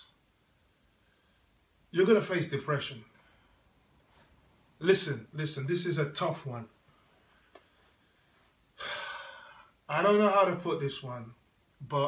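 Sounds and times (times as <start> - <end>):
man breathing in: 7.1 - 9.8.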